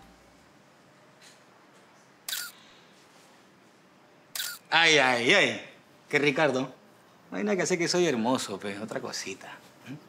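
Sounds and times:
phone camera shutter click: 2.3s - 2.6s, 4.4s - 4.6s.

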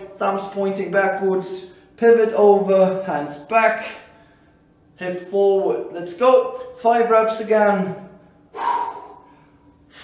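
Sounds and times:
man exhaling sharply: 8.5s - 10.0s
soft breath: 8.5s - 10.0s.

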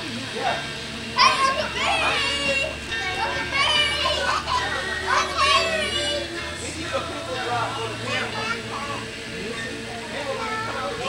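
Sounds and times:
children shouting: 1.2s - 6.6s.

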